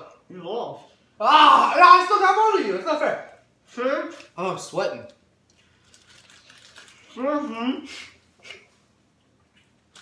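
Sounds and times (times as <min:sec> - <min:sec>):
plastic bag crinkling: 0:05.6 - 0:07.2.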